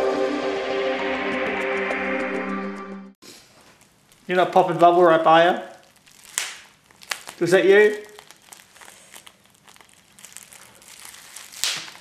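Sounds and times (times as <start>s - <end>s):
bubble wrap crinkling: 3.3s - 12.0s
bubble wrap pop: 5.7s - 12.0s.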